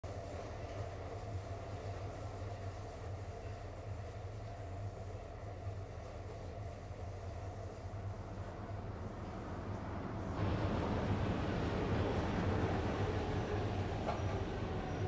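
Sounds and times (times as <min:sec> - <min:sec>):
steady low rumble: 0:10.1 - 0:14.0.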